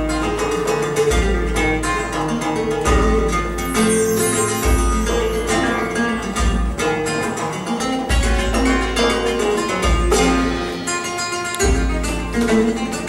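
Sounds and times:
flamenco guitar: 0:00.0 - 0:13.0
hand drum beats: 0:00.0 - 0:13.0.

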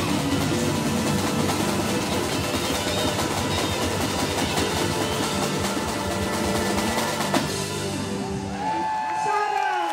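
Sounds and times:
electric guitar: 0:00.0 - 0:09.2
live band playing: 0:00.0 - 0:09.8.

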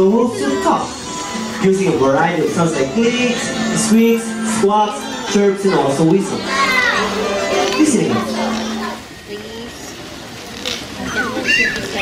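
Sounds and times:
faint crowd murmur: 0:00.0 - 0:12.0
dolphins vocalizing: 0:06.5 - 0:12.0.

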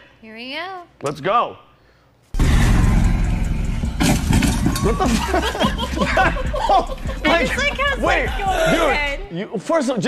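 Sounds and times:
golf cart driving rumble: 0:02.4 - 0:07.3.

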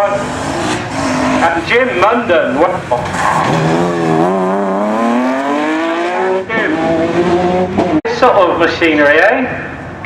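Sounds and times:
rally car engine revving: 0:00.0 - 0:08.0.

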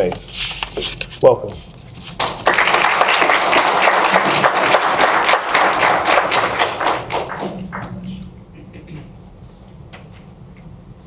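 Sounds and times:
audience applauding: 0:02.2 - 0:08.3.

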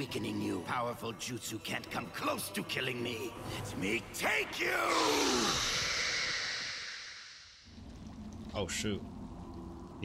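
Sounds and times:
breathy hiss: 0:04.9 - 0:07.6.

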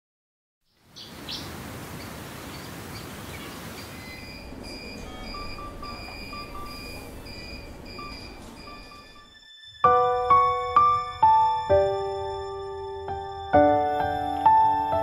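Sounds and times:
steady room noise: 0:01.5 - 0:10.2
lower-pitched beep: 0:04.0 - 0:09.4
short electronic beeps: 0:04.0 - 0:09.4.

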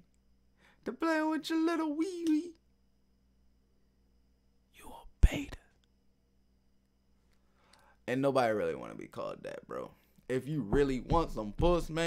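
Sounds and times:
man whispering: 0:04.7 - 0:05.9.

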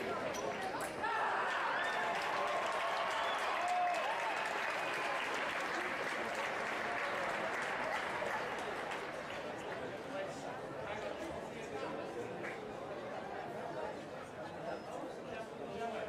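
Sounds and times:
crowd applauding and cheering: 0:01.0 - 0:09.5.

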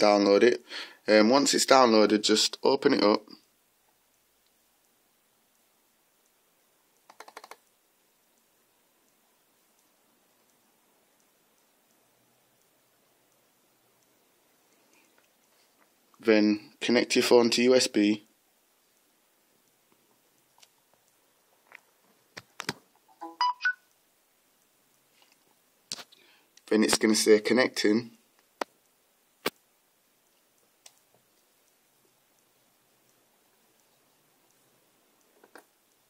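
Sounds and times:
sharp plastic clicks: 0:07.0 - 0:07.7.

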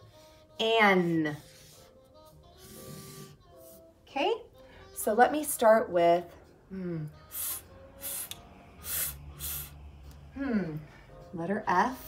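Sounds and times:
woman making breathy f hisses: 0:07.3 - 0:09.8.

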